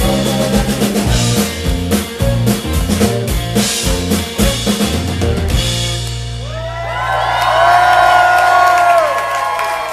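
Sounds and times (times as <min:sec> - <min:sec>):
audience cheering and whooping: 0:06.4 - 0:09.9.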